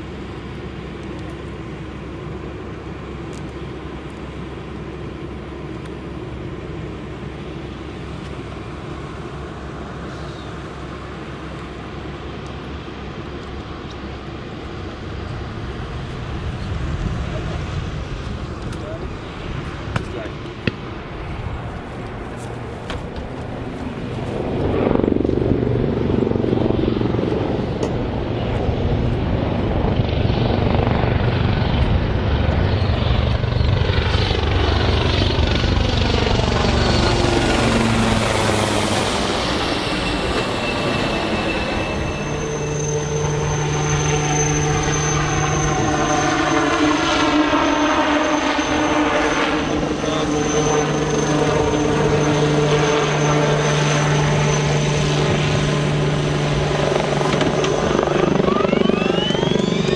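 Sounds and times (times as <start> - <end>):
helicopter rotor and turbine: 0.0 - 59.9
high whine rising in pitch: 23.5 - 59.9.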